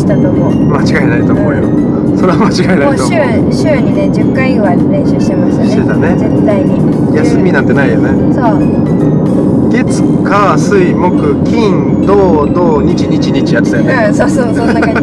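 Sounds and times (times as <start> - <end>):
people talking: 0.0 - 8.7, 9.7 - 15.0
background music: 0.0 - 15.0
road and engine hum: 0.0 - 15.0.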